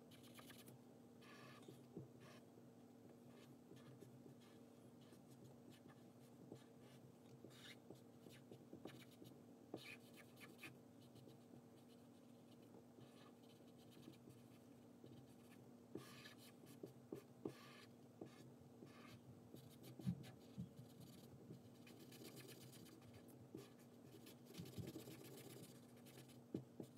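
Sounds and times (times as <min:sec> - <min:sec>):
marker scratching on paper: 0:00.1 - 0:02.4, 0:03.3 - 0:26.9.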